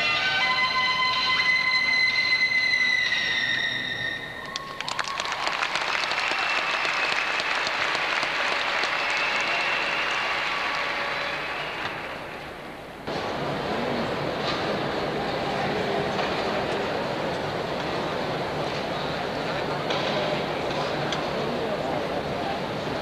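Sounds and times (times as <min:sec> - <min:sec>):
audience applauding: 0:04.4 - 0:12.3.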